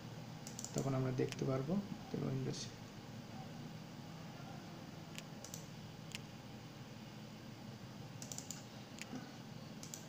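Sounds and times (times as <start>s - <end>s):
low steady hum: 0.0s - 10.0s
computer mouse clicks: 0.4s - 1.4s, 5.1s - 6.3s, 8.2s - 9.2s, 9.8s - 10.0s.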